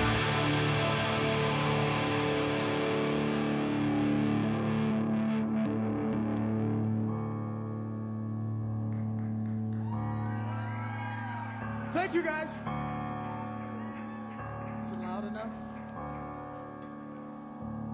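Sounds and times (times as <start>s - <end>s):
live rock band: 0.0s - 7.0s
distorted electric guitar chord: 0.0s - 8.7s.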